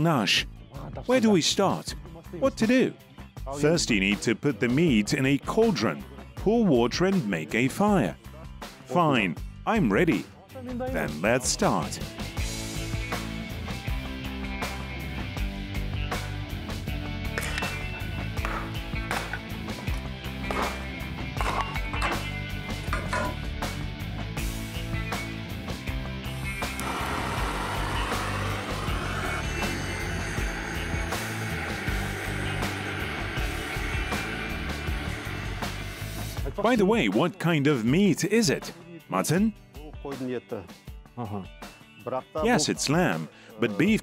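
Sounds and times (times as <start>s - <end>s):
background music: 0.0s - 44.0s.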